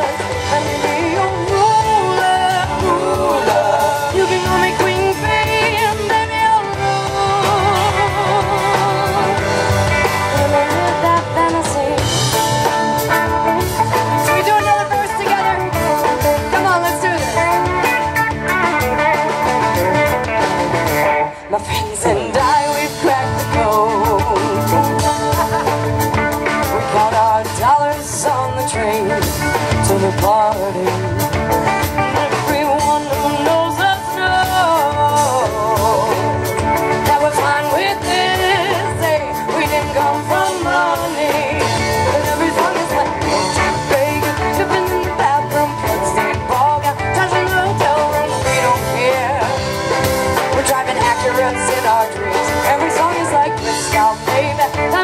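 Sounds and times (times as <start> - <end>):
woman singing into microphone: 0.0 - 13.2, 13.8 - 20.4, 21.0 - 31.4, 32.1 - 55.0
drum kit: 0.0 - 55.0
electric guitar lead: 0.0 - 55.0
rhythm guitars: 0.0 - 55.0.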